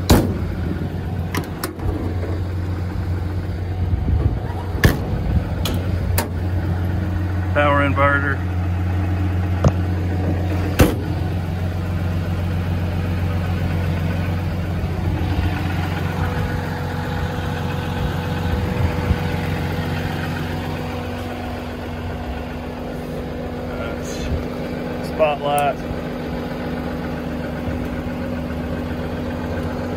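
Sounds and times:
diesel engine idling: 0.0 - 29.9.

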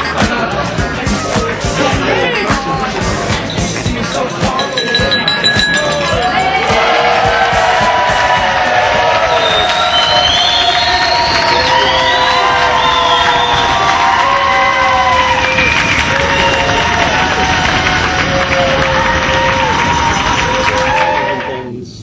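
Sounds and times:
large crowd cheering and shouting: 0.0 - 21.8.

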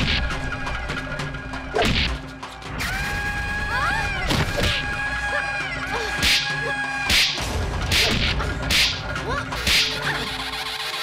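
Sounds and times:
whip-like swishes: 7.1 - 9.0.

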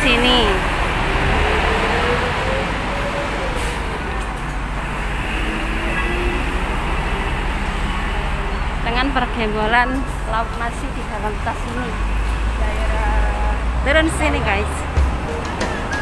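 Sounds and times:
road traffic noise: 0.0 - 16.0.

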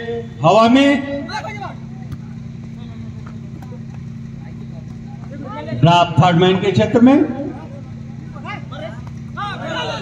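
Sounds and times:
faint crowd noise: 0.0 - 10.0
low electrical hum: 0.0 - 10.0.

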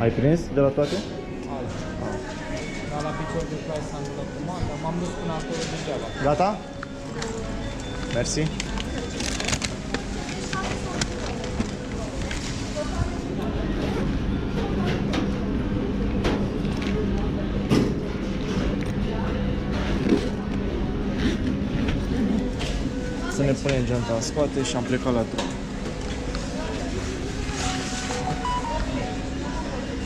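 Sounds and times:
low machine hum: 0.0 - 30.0.

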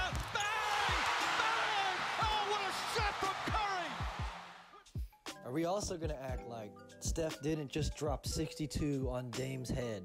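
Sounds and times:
loud arena crowd: 0.0 - 4.7
commentator talking: 1.4 - 4.0.

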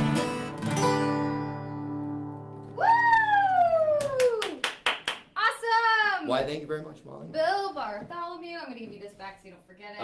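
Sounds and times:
person whooping: 2.8 - 4.6
hand claps: 3.0 - 5.4.

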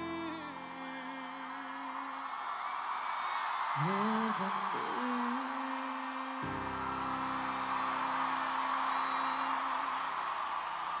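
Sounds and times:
concert crowd cheering: 0.0 - 11.0.

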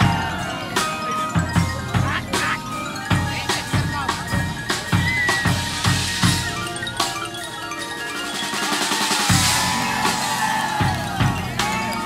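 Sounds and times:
marching band percussion music: 0.0 - 12.0.

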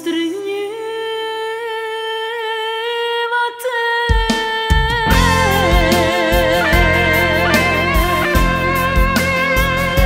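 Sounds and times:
woman singing long note: 0.6 - 9.0
sparse musical backing: 5.0 - 10.0.

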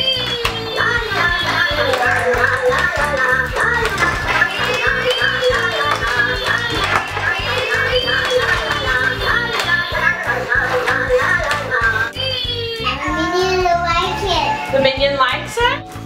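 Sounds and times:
toy playing tune: 0.0 - 12.6.

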